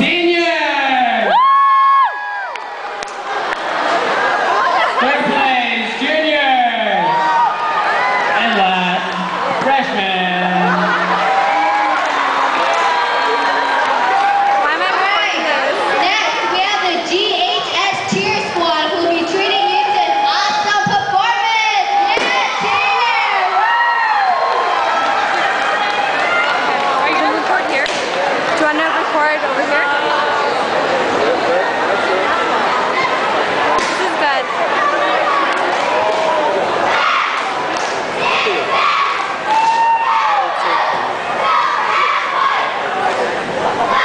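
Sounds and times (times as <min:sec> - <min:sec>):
crowd noise: 0:00.0 - 0:44.0
high-pitched shrieked whoops: 0:01.3 - 0:02.6.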